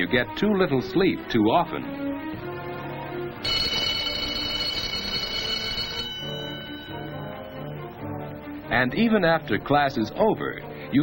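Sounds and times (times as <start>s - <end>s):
background film music: 0.0s - 11.0s
school bell ringing: 3.4s - 8.4s.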